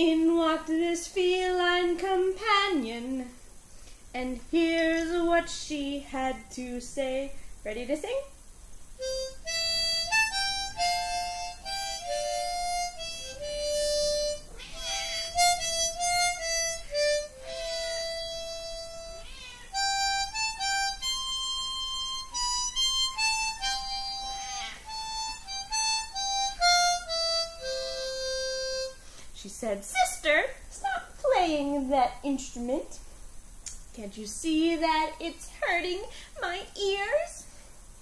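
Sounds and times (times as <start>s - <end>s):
harmonica playing a melody: 9.0s - 29.2s.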